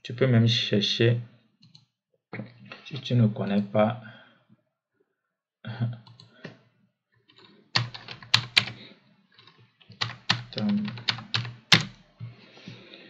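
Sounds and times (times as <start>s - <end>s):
computer keyboard typing: 7.3s - 8.8s, 9.4s - 12.0s.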